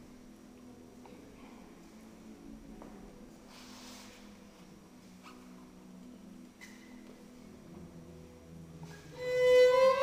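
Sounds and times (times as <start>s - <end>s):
violin and guitar playing softly: 8.8s - 10.0s.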